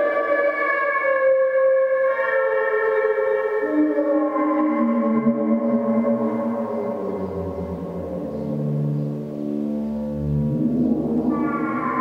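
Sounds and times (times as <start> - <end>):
low droning synthesizer pad: 2.8 - 12.0.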